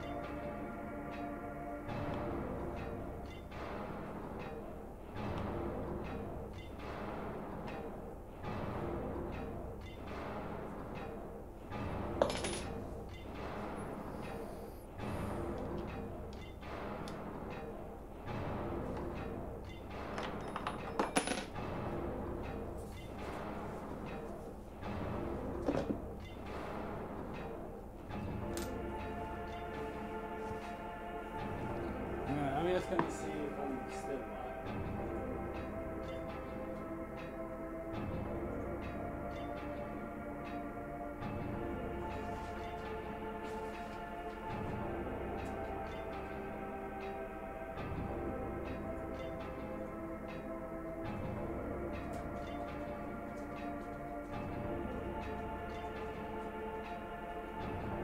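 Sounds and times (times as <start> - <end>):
background music with regular pulse: 0.0 - 58.0.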